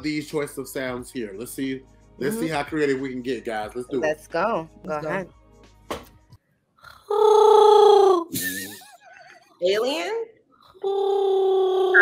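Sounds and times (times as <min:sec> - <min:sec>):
woman imitating a roar: 0:07.1 - 0:08.3, 0:10.8 - 0:12.0.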